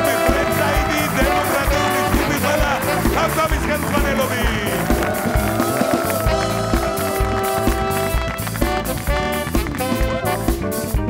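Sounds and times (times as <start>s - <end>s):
bass: 0.0s - 11.0s
drum kit: 0.0s - 11.0s
saxophone: 0.0s - 11.0s.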